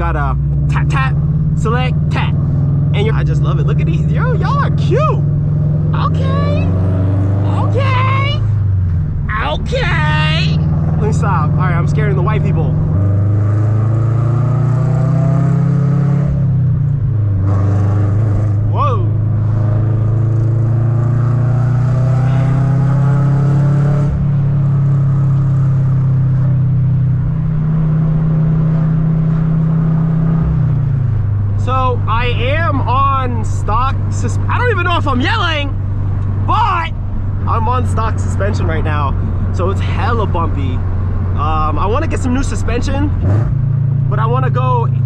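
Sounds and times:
car engine droning: 0:00.0 - 0:45.0
person's voice sliding in pitch: 0:06.0 - 0:06.8.

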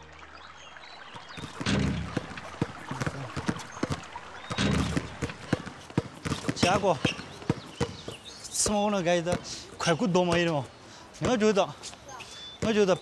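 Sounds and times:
basketballs bouncing on court: 0:01.1 - 0:11.6, 0:12.6 - 0:13.0.

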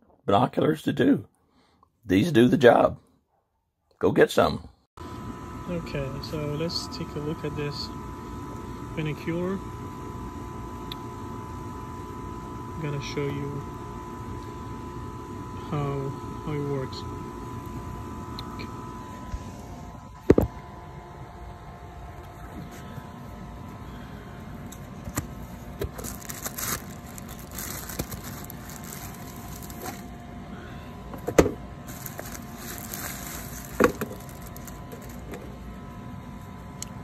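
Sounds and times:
faint steady hum: 0:04.4 - 0:37.0
cardboard box handled: 0:25.8 - 0:30.0, 0:31.9 - 0:35.3
plastic bag crinkling: 0:25.8 - 0:30.2, 0:31.8 - 0:35.5.

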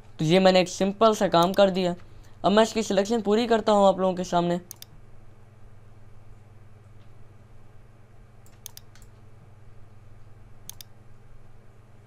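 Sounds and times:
steady low hum: 0:00.0 - 0:12.0
computer mouse clicks: 0:01.4 - 0:02.4, 0:04.7 - 0:05.0, 0:08.4 - 0:09.2, 0:10.7 - 0:11.0.

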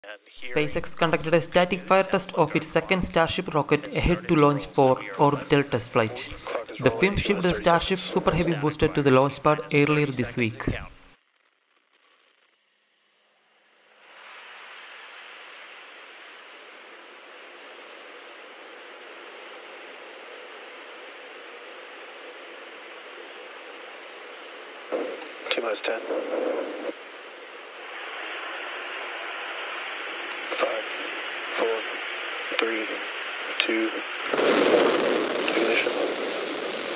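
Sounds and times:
radio loop hiss: 0:00.0 - 0:12.6, 0:13.8 - 0:36.9
person calling out over radio: 0:00.4 - 0:11.0.

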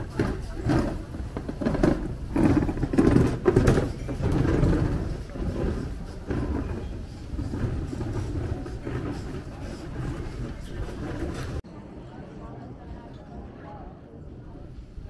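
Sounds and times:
passers-by talking: 0:00.0 - 0:15.0.

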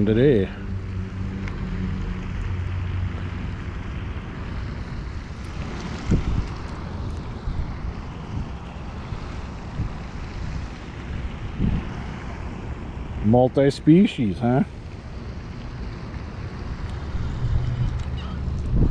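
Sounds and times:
wind buffeting microphone: 0:00.7 - 0:13.3, 0:15.7 - 0:18.9.

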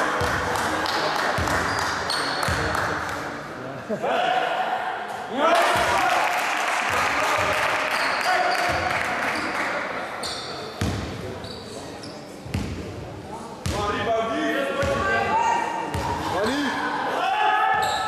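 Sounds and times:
spectators cheering in hall: 0:05.5 - 0:09.4
basketball bouncing on floor: 0:12.5 - 0:12.8.

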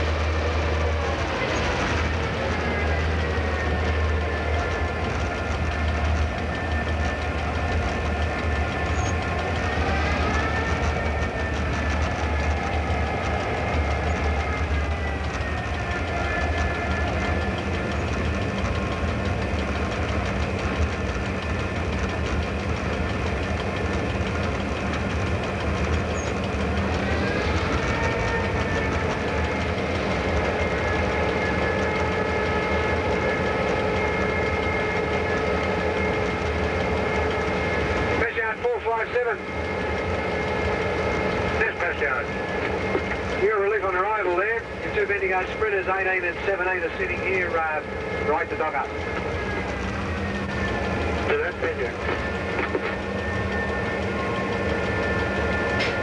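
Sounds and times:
high engine whine: 0:00.0 - 0:56.0
locomotive engine drone: 0:00.0 - 0:56.0.

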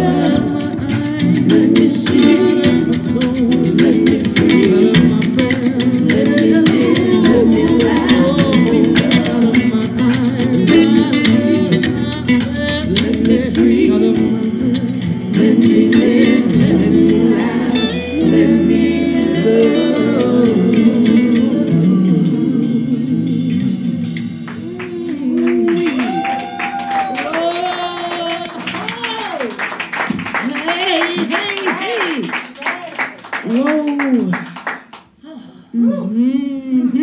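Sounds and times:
woman singing gospel song: 0:00.0 - 0:23.0, 0:24.6 - 0:29.5
electric bass: 0:00.0 - 0:27.1
hand claps: 0:24.5 - 0:35.2.

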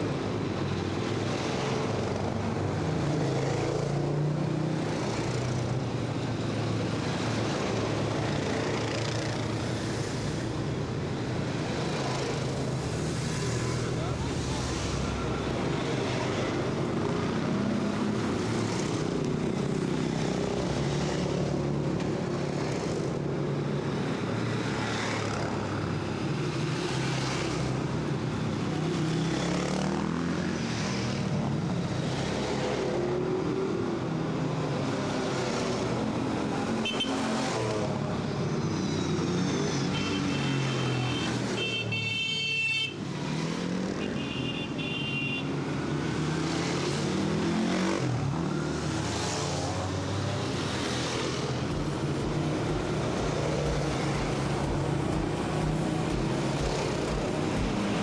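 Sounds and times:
quad engines passing by: 0:00.0 - 0:41.6, 0:45.5 - 0:58.0.

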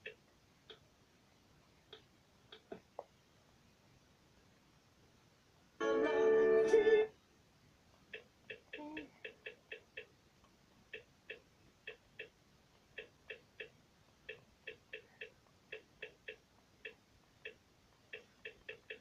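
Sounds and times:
faint sharp clicks: 0:07.9 - 0:19.0.

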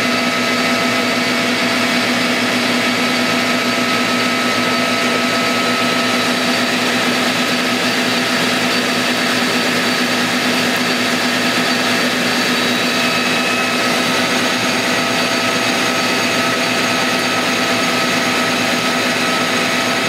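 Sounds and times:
lathe machine hum and whine: 0:00.0 - 0:20.0.

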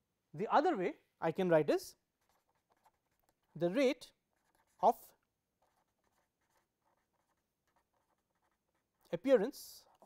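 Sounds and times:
marker scratching on paper: 0:01.7 - 0:10.0.

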